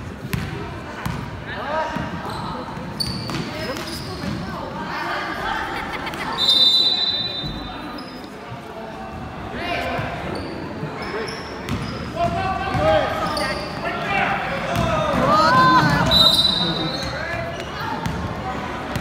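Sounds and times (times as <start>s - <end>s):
people shouting in a gym: 12.2s - 18.8s.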